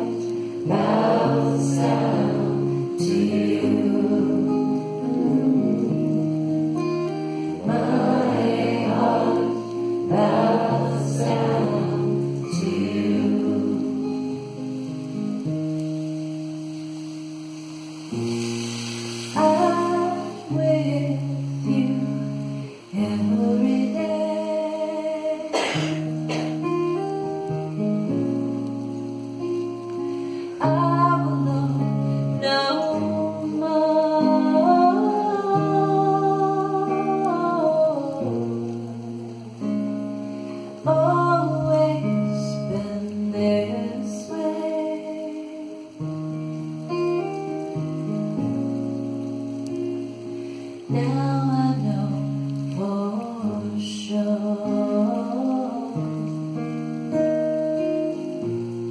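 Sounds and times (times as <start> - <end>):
woman singing devotional song: 0.0 - 6.4, 7.6 - 14.4, 19.4 - 25.8, 30.6 - 38.9, 40.8 - 46.0, 50.9 - 56.3
acoustic guitar chords: 0.0 - 58.9.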